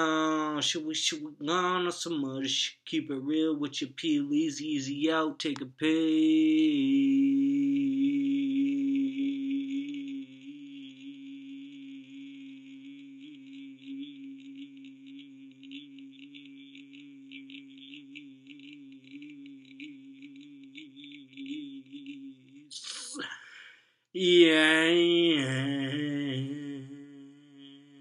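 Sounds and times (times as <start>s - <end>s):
man humming low note: 5.8s - 23.4s, 24.2s - 28.0s.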